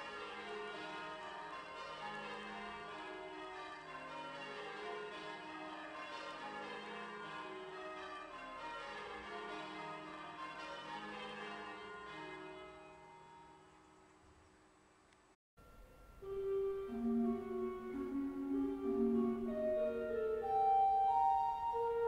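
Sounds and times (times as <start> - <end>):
church bells ringing: 0.0 - 13.6, 15.6 - 22.0.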